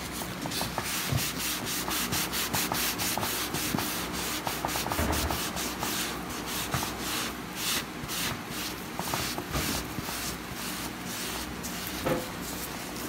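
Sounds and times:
wipe rubbing synthetic skin: 0:00.5 - 0:13.0.

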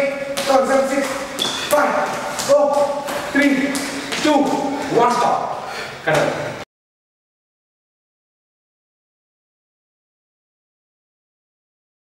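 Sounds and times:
man shouting: 0:00.0 - 0:05.4.

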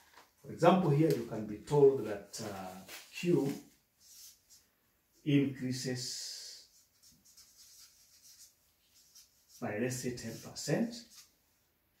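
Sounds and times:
marker pen scratching on paper: 0:06.7 - 0:11.3.

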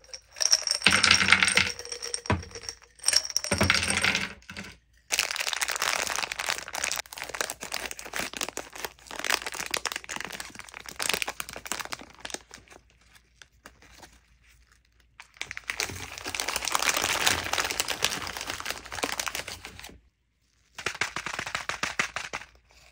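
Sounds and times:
candies clinking in glass jar: 0:00.0 - 0:12.5, 0:15.4 - 0:19.4
plastic bag crinkling: 0:04.5 - 0:13.9, 0:15.4 - 0:19.8.

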